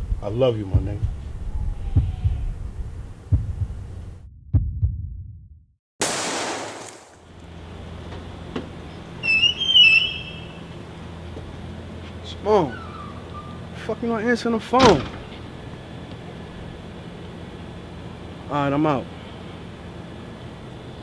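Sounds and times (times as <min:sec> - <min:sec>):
heartbeat thumping: 0:00.0 - 0:05.5
pistol gunshot: 0:06.0 - 0:07.2.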